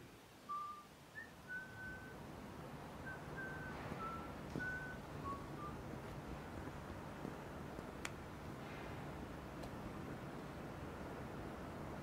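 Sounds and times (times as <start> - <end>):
person whistling a slow tune: 0.5 - 2.2, 3.0 - 5.8
low background rumble: 0.6 - 12.0.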